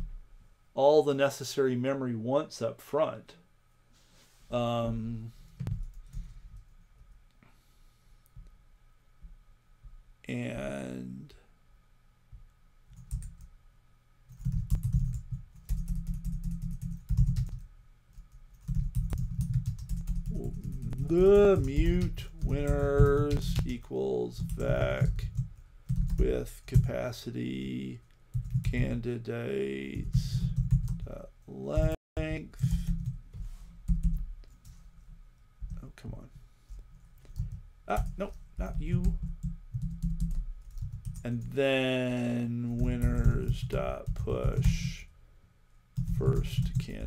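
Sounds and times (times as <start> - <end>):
computer keyboard typing: 12.9 - 13.5, 14.3 - 23.8, 24.4 - 26.9, 28.3 - 29.0, 30.0 - 31.1, 32.6 - 33.2, 33.9 - 34.6, 37.3 - 41.2, 42.8 - 44.9, 46.0 - 47.0.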